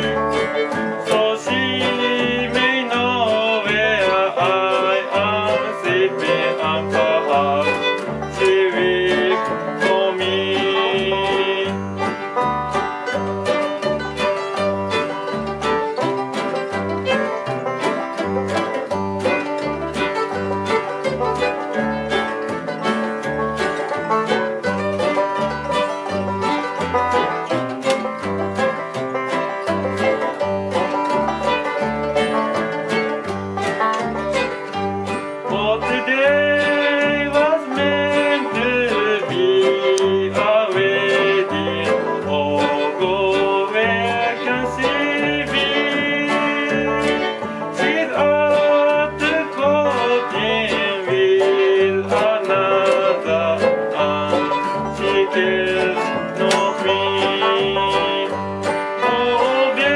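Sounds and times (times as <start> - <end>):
person singing: 0.0 - 12.4, 34.3 - 59.9
banjo picking: 0.0 - 59.9
bluegrass band playing: 0.0 - 59.9.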